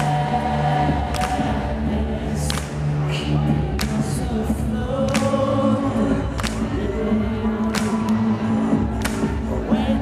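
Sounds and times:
choir-like backing vocals: 0.0s - 10.0s
man singing lead vocals: 0.0s - 10.0s.

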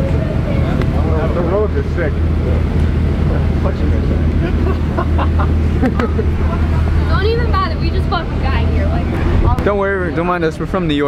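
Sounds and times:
car engine idling: 0.0s - 11.0s
people talking: 5.8s - 11.0s.

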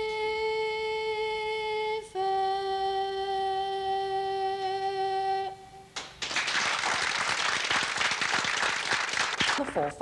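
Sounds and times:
audience applause: 6.0s - 9.8s.

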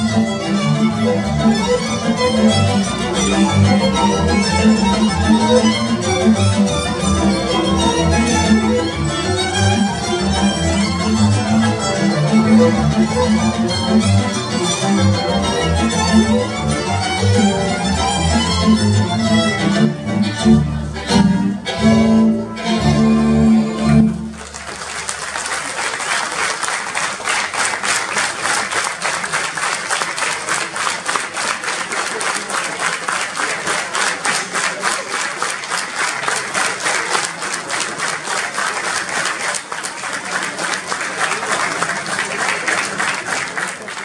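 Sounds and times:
audience clapping in rhythm: 0.0s - 19.8s, 23.8s - 44.0s.

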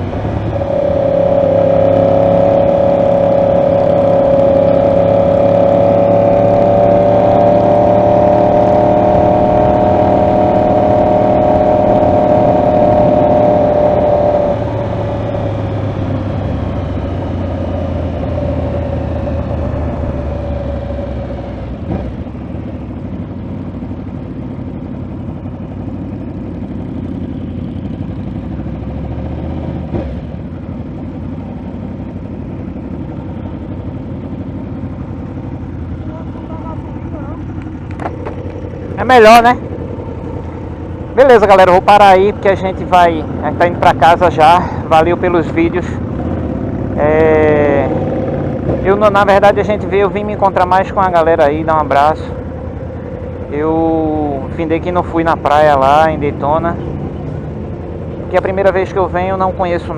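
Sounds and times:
motorcycle engine running: 0.0s - 59.9s
traffic rumble: 0.0s - 59.9s.

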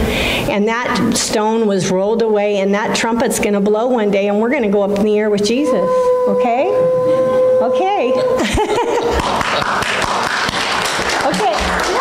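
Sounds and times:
crowd applauding: 9.0s - 12.0s.

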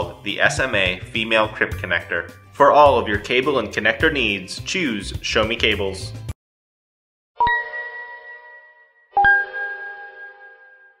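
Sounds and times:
bell-like chime dings: 7.4s - 11.0s.

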